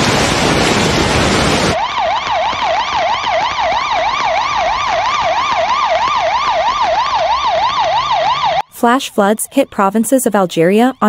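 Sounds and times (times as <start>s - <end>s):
electronic siren yelping: 1.6s - 11.0s.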